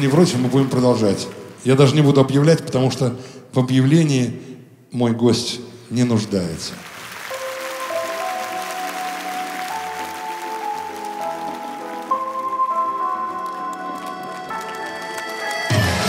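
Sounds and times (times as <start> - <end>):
live band playing slow ballad: 7.4 - 16.0.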